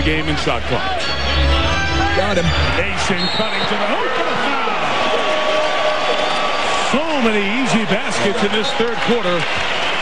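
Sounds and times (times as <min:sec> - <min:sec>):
crowd cheering and applauding: 0:00.5 - 0:10.0.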